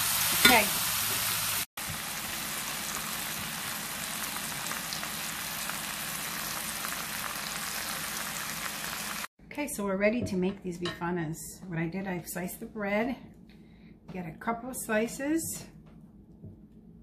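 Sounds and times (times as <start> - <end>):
meat and onions sizzling in skillet: 0.0 - 9.3.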